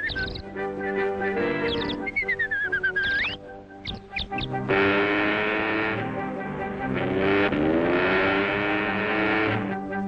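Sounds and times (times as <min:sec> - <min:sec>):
cartoon orchestral music: 0:00.0 - 0:10.0.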